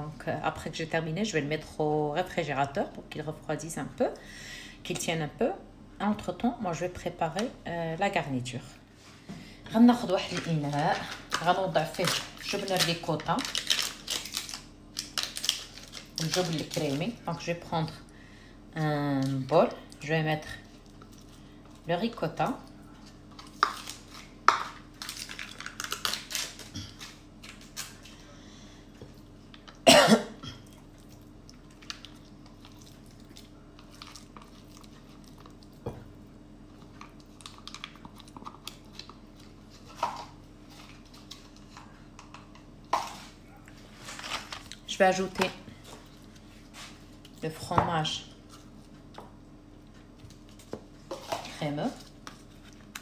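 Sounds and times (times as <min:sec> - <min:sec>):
low steady hum: 0:00.0 - 0:53.0.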